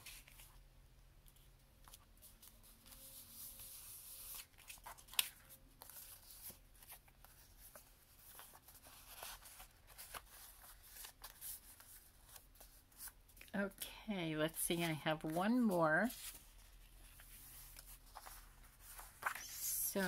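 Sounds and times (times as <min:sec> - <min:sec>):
paper rustling: 0:01.3 - 0:13.5, 0:14.7 - 0:20.0.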